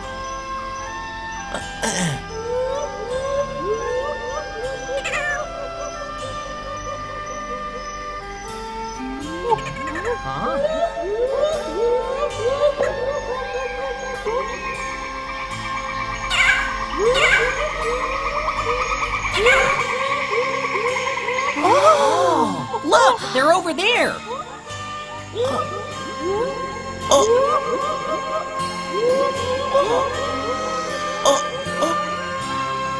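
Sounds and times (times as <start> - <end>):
high chirping calls: 0.0 - 26.0
background music with held chords: 0.0 - 32.9
cartoon monkey squealing: 2.5 - 8.0, 9.0 - 14.9, 16.3 - 23.3.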